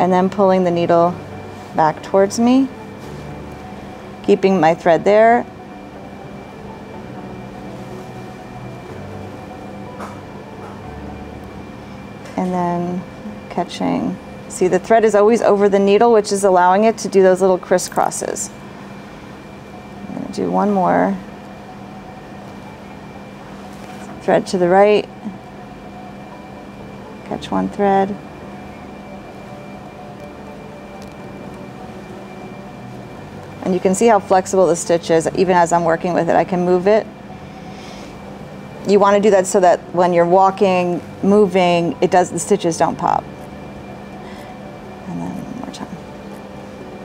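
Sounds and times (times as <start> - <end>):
faint high whine: 0.0 - 47.0
low room hum: 0.0 - 47.0.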